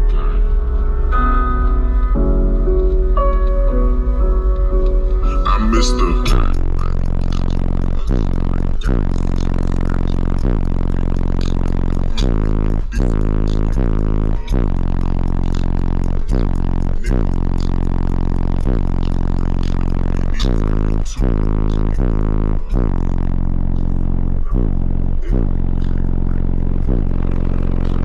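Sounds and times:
bass-heavy music through subwoofers: 0.0s - 28.0s.

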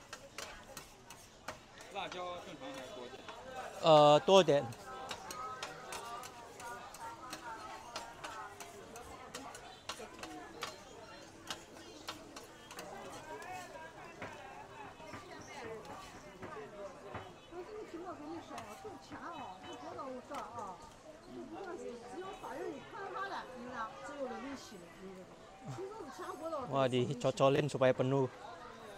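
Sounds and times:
crowd talking: 0.0s - 28.9s
metal spatulas scraping griddle: 0.1s - 3.0s.

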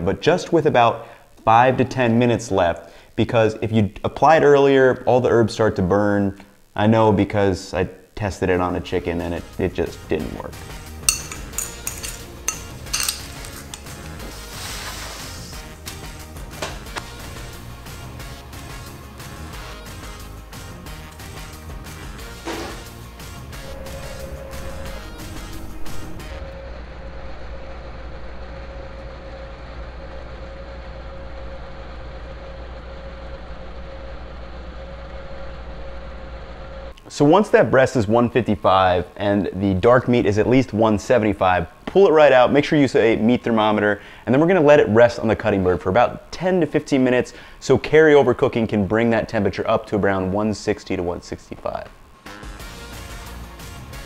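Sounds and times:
metal spoon clinking on ceramic bowl: 11.0s - 14.0s
oven humming and whirring: 11.5s - 52.2s
steady whine: 19.8s - 53.4s.

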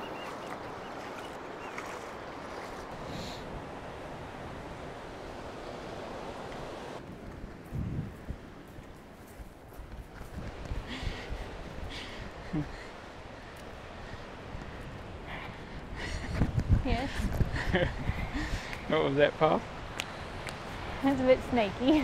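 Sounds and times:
surf and sea water: 0.0s - 22.0s
wind buffeting microphone: 2.4s - 18.9s.

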